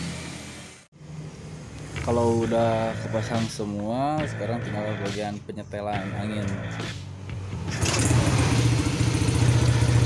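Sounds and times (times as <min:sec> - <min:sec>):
motorcycle engine starting and idling: 0:07.5 - 0:10.0.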